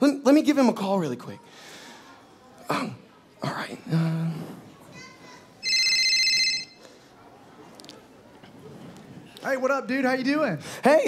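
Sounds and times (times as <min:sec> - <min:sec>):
telephone ringing: 0:05.6 - 0:06.8.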